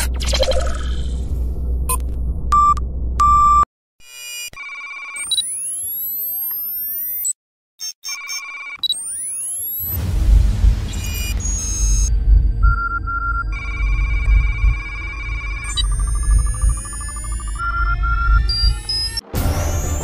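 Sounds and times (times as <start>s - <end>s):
deep rumble: 0.0s - 3.6s, 10.0s - 20.0s
electronic tones with rising sweeps: 8.9s - 20.0s
short electronic beeps: 11.0s - 20.0s.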